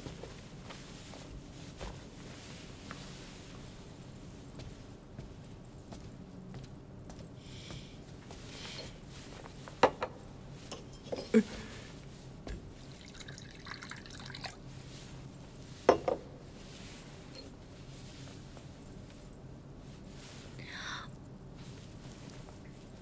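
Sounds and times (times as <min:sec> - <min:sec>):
liquid pouring into a cup: 0:13.0 - 0:14.6.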